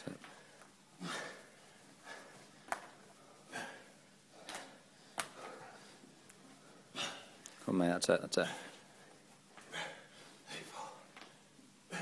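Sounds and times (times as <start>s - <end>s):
men breathing heavily: 0.0s - 7.7s, 8.3s - 12.0s.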